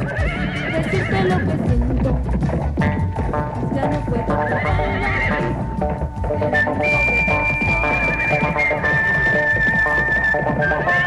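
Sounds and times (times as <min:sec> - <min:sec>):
accordion melody: 0:00.0 - 0:11.0
percussion beat: 0:00.0 - 0:11.0.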